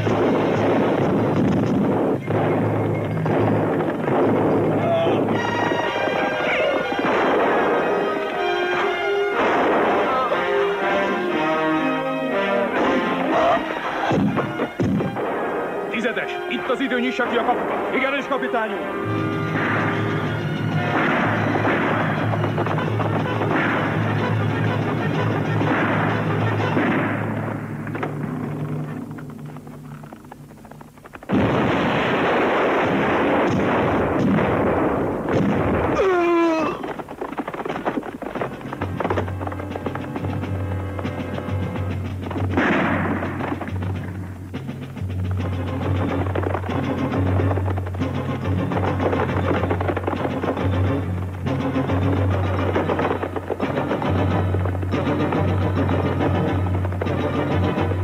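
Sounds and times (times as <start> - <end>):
explosions: 0.0 - 10.6, 12.8 - 29.2, 30.6 - 58.0
gunfire: 0.0 - 11.1, 12.7 - 16.2, 19.2 - 29.1, 31.1 - 58.0
dramatic film score: 0.0 - 31.4, 32.2 - 58.0.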